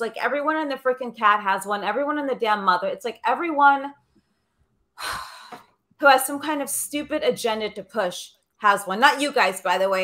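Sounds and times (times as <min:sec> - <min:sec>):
woman sighing: 0:05.0 - 0:05.8.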